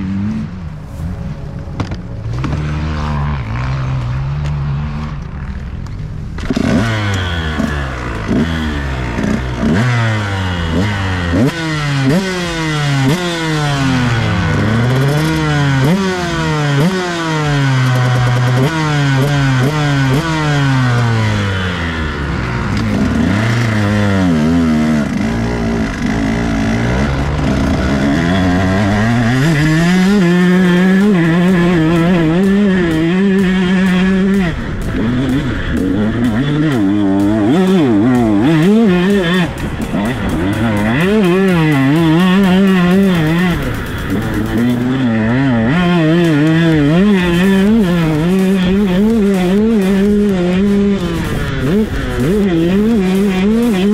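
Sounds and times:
dirt bike engine revving: 0.0s - 53.9s.

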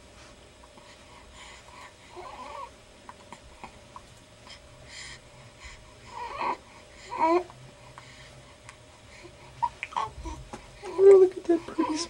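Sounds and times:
baby cooing: 9.6s - 11.0s.

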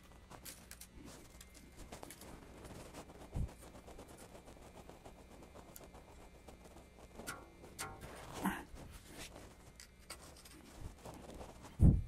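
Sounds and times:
rubbing and scraping of bass strings: 6.9s - 9.4s.

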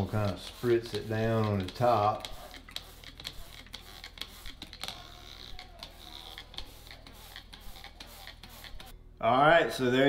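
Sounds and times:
spray bottle spritzes: 0.0s - 8.9s
spray bottle trigger clicks: 0.2s - 8.9s.

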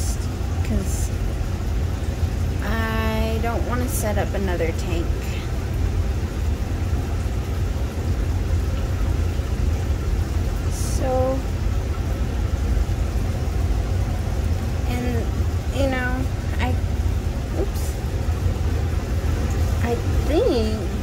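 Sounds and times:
cooler running low rumble: 0.0s - 21.0s.

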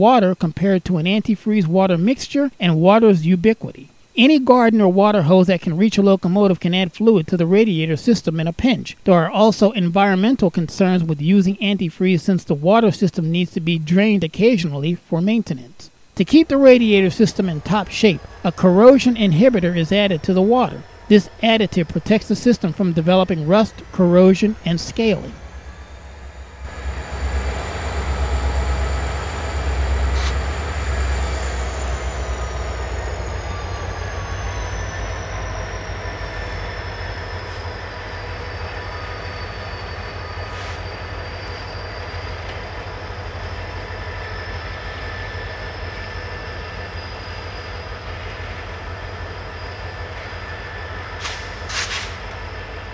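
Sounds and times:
thin high whine: 0.0s - 52.9s
deep diesel engine rumble: 16.3s - 52.9s
train wheels on rail: 16.9s - 52.9s.

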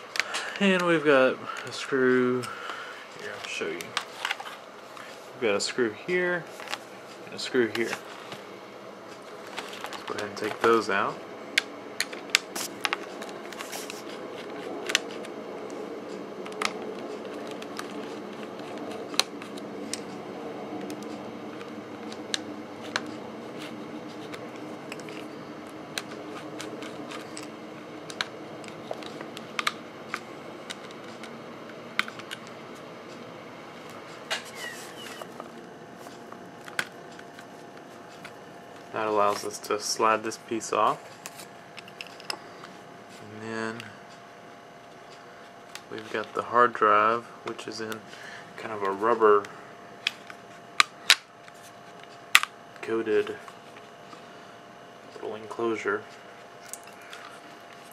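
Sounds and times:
steady low hum: 0.0s - 57.9s.

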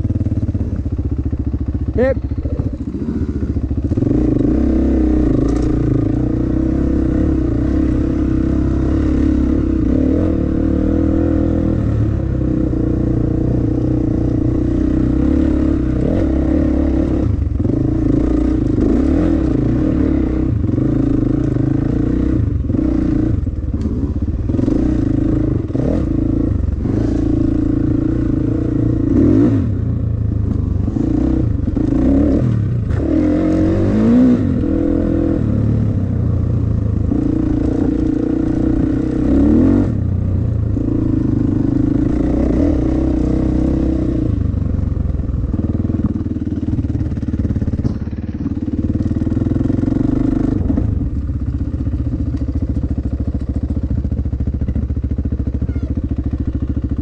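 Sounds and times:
dirt bike engine revving: 0.0s - 51.2s.

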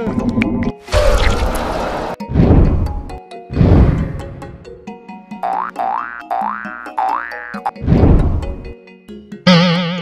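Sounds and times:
comedy sound effects: 9.5s - 10.0s.

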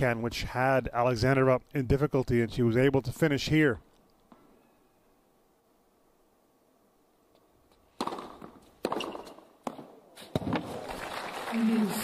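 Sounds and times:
tennis ball struck by rackets: 8.0s - 10.8s.

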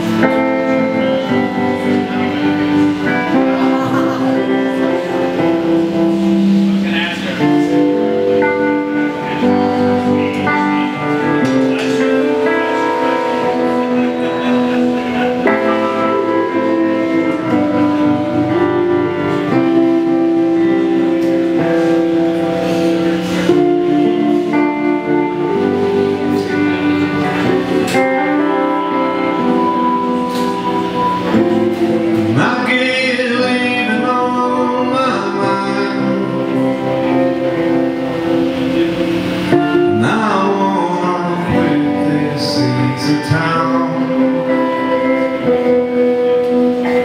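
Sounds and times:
drums: 0.0s - 47.0s
live band music: 0.0s - 47.0s
strummed acoustic guitar: 0.0s - 47.0s.

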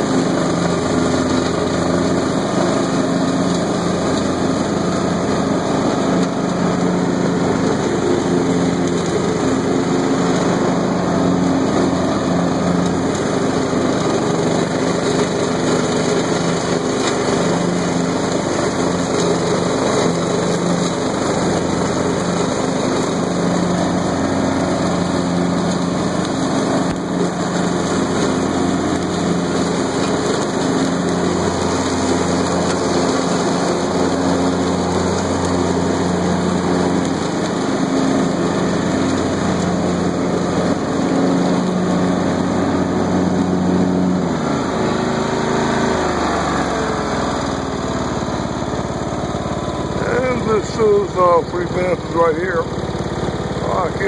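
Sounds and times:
lawn tractor engine mowing: 0.0s - 54.0s.

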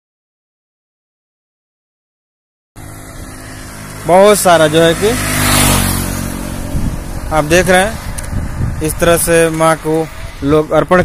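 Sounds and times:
vehicle engine hum: 2.8s - 11.0s.

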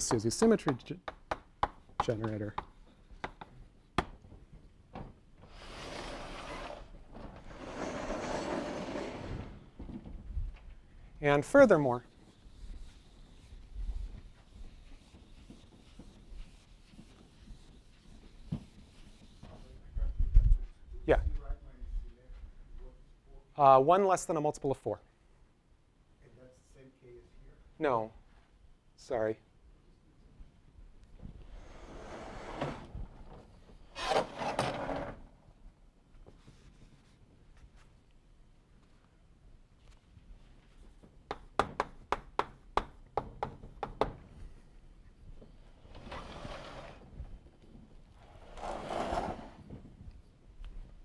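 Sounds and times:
chalkboard panels rolling on tracks: 5.4s - 9.6s, 31.6s - 33.4s, 45.8s - 47.1s, 48.2s - 49.9s
eraser rubbing on chalkboard: 14.3s - 19.7s.

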